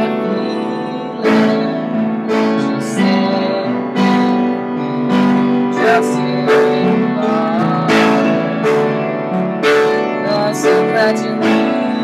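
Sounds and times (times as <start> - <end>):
upright piano chords: 0.0 - 12.0.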